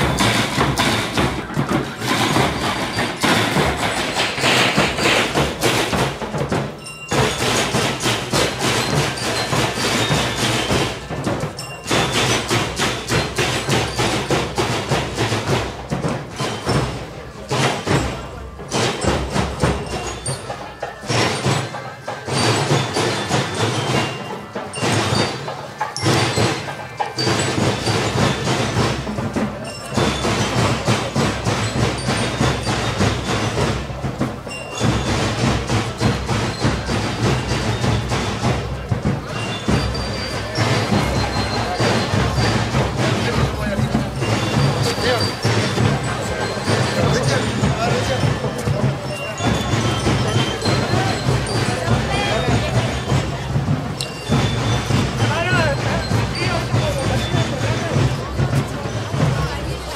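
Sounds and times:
marching band drums: 0:00.0 - 0:59.9
snare drums: 0:00.0 - 0:59.9.

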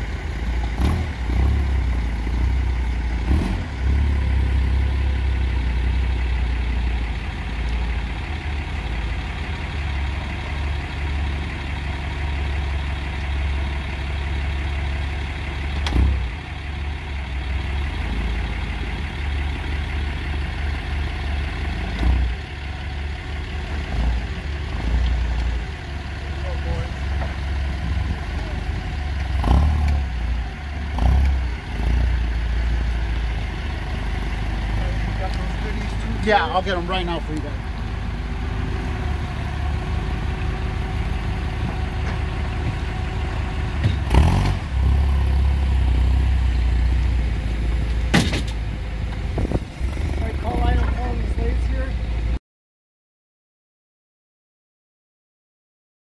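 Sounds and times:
forklift engine running: 0:00.0 - 0:52.4
sharp metal clunks: 0:48.1 - 0:48.6.

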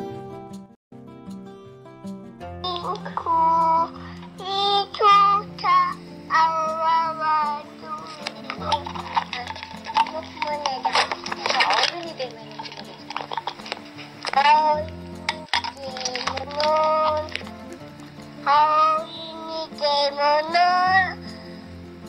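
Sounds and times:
soft background music: 0:00.0 - 0:22.0
dishes and cutlery clinking: 0:07.8 - 0:18.0.

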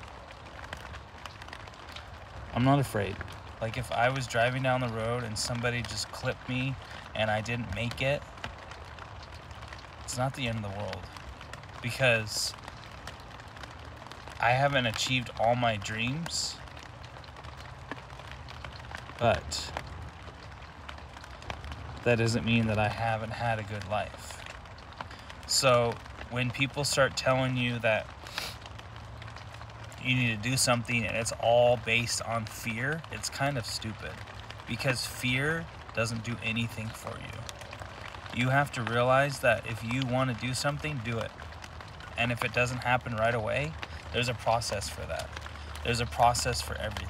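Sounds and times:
low background hum: 0:00.0 - 0:47.0
low steady rumble: 0:00.0 - 0:47.0
faint hiss: 0:21.8 - 0:47.0.

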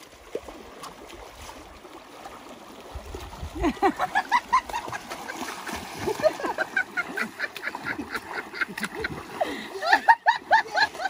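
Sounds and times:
people wading through water: 0:00.0 - 0:11.0.

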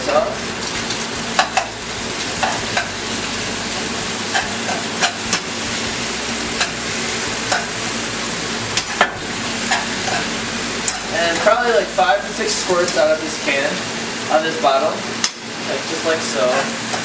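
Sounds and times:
food sizzling in hot pan: 0:00.0 - 0:17.0.

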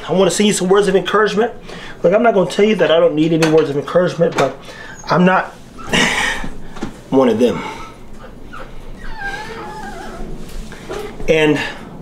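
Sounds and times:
puppy whining: 0:05.8 - 0:06.6, 0:07.7 - 0:11.2.

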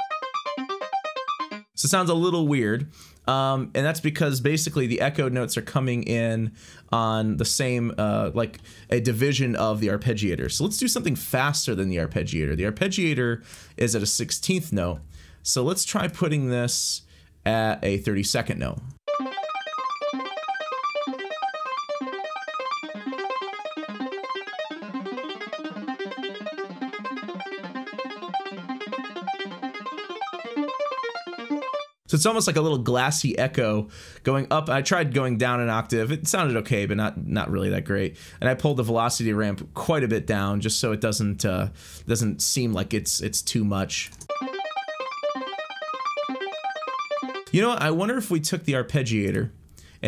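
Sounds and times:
synth arpeggio: 0:00.0 - 0:01.8, 0:19.1 - 0:32.0, 0:44.3 - 0:47.7.

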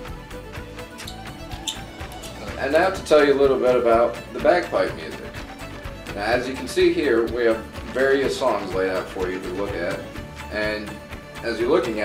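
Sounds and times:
background music with quick beat: 0:00.0 - 0:12.0.

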